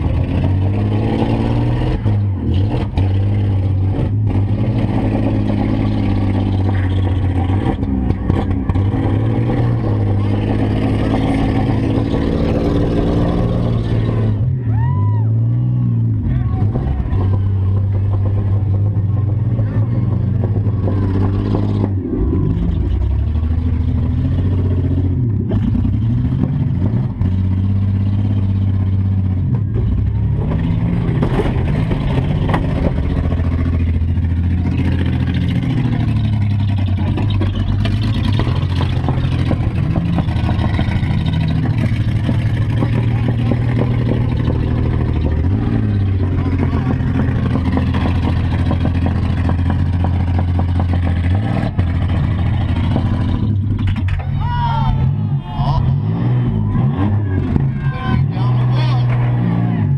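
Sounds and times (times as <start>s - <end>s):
van engine revving: 0.0s - 59.9s.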